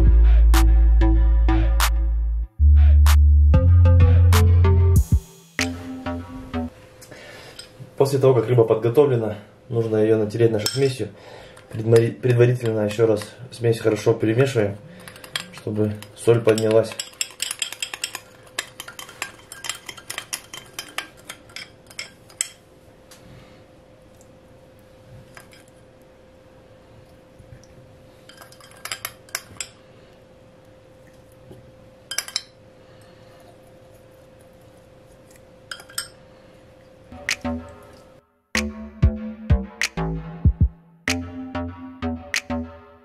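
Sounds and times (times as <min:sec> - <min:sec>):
faint steady hum: 0:05.8 - 0:38.2
teaspoon clinking against glass: 0:15.0 - 0:22.6, 0:35.7 - 0:36.2.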